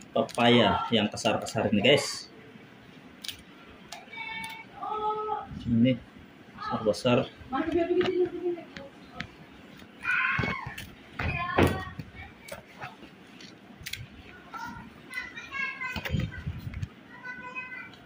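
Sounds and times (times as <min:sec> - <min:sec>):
children calling out: 0:03.9 - 0:05.5, 0:10.0 - 0:12.9, 0:14.4 - 0:16.4, 0:17.0 - 0:18.0.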